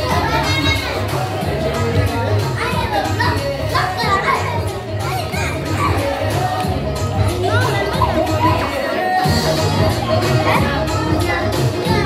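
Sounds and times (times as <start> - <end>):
children's voices: 0.0 - 12.0
music with steady bass beat: 0.0 - 12.0
party crowd chatter: 0.0 - 12.0.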